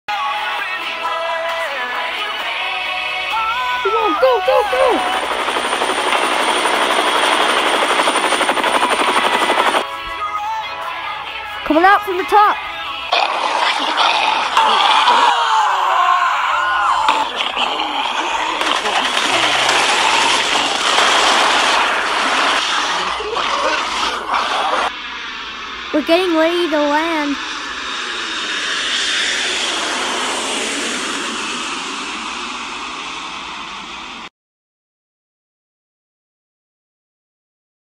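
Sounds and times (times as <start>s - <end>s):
jet airliner engine rushing: 3.2s - 10.0s, 13.1s - 34.3s
helicopter rotor chopping: 3.3s - 10.0s, 11.7s - 34.3s.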